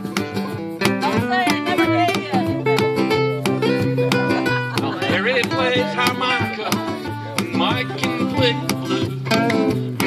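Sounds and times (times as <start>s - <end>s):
acoustic guitars strumming: 0.0s - 10.0s
cajon beat: 0.0s - 10.0s
person singing: 4.3s - 10.0s.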